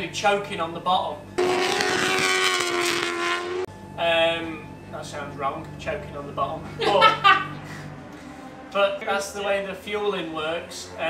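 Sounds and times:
motorcycle engine revving high: 0:01.4 - 0:03.7.

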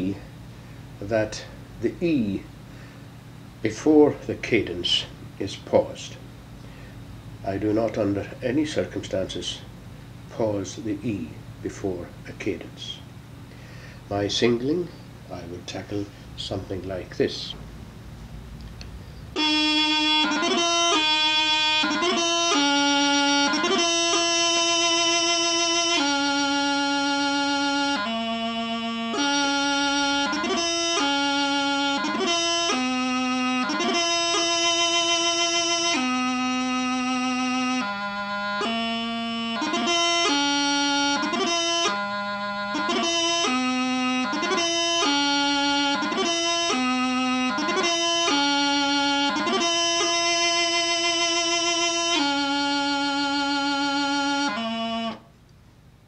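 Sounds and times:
bagpipe practice chanter melody: 0:00.0 - 0:17.6, 0:18.9 - 0:55.3.

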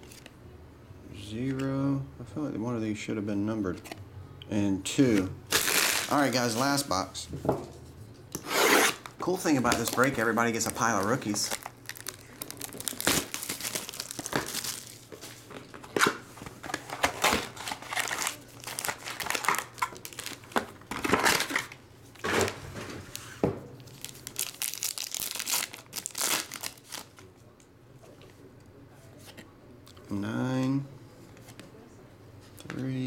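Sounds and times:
foil wrapper crinkling and tearing: 0:05.5 - 0:06.6, 0:09.7 - 0:15.2, 0:17.0 - 0:21.8, 0:23.9 - 0:27.2.

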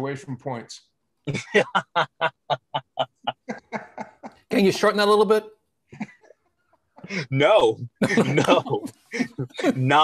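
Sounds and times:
man laughing hard: 0:01.3 - 0:04.4, 0:08.0 - 0:09.8.

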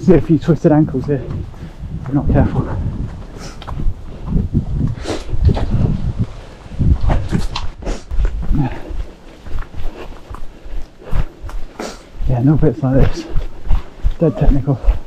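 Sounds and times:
footsteps on grass and earth: 0:00.0 - 0:15.0
heavy breathing: 0:01.3 - 0:02.1, 0:02.7 - 0:06.0, 0:07.8 - 0:12.3.

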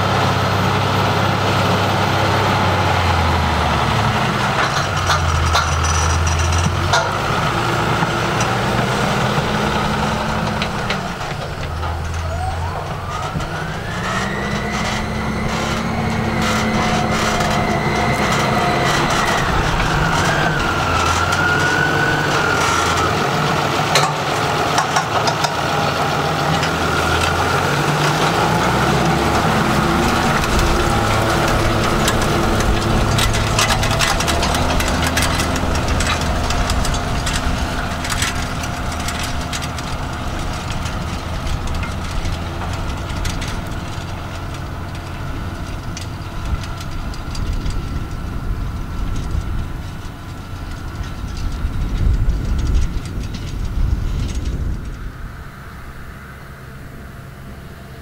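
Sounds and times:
tractor diesel engine under load: 0:00.0 - 0:58.0.

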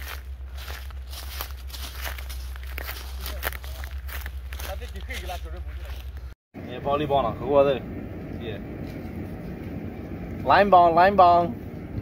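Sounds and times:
footsteps through grass: 0:00.0 - 0:06.4
steady low rumble: 0:00.0 - 0:12.0.

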